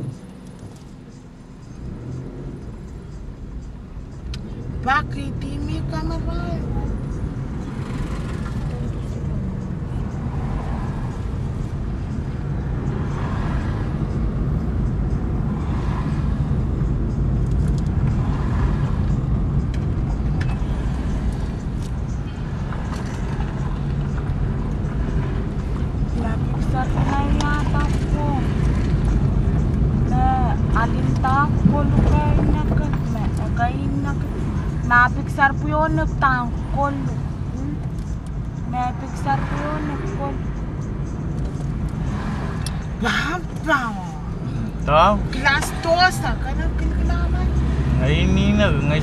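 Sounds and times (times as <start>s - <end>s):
car engine and tyres rumbling: 0.0s - 49.0s.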